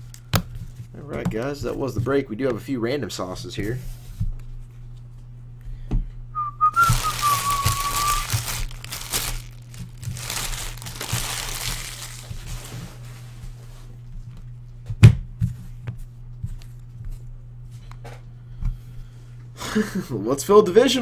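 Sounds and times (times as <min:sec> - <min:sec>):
person whistling wavering note: 0:06.4 - 0:08.3
foil wrappers crinkling: 0:06.8 - 0:13.1.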